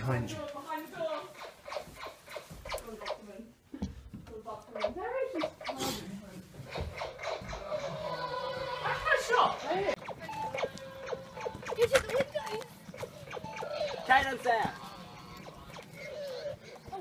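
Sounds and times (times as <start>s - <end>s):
voices: 2.7s - 17.0s
laser gun electronic tones: 9.6s - 16.2s.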